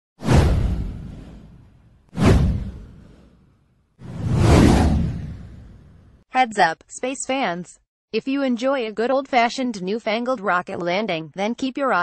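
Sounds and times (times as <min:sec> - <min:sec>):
deep whoosh effects: 0:00.2 - 0:06.2.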